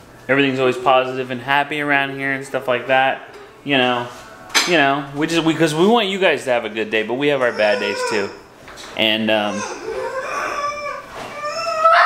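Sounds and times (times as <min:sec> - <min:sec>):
girl's high-pitched upset vocalizing: 0:09.6 - 0:12.0.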